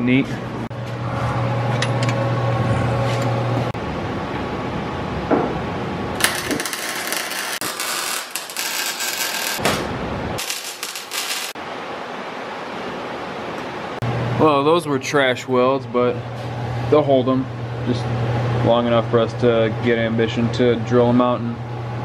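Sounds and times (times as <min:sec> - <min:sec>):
welding crackle and hiss: 0:06.2 - 0:09.7, 0:10.4 - 0:11.6.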